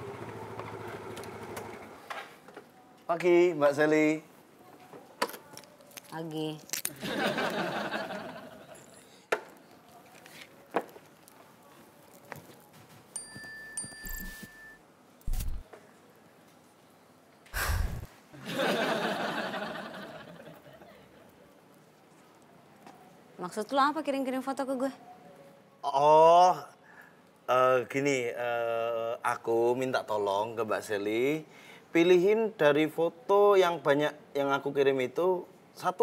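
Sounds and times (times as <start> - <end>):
motor scooter engine idling: 0.0 - 1.8
phone message chimes: 13.2 - 14.8
burst of noise: 17.6 - 18.1.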